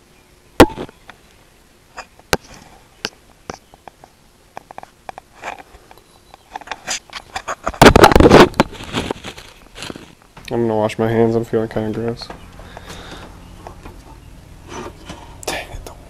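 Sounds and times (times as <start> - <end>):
loud rustling scrape: 6.6 - 10.2.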